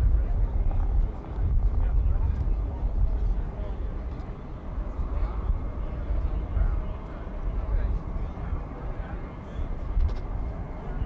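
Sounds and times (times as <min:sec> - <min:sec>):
jet engines rumbling: 0:00.0 - 0:11.0.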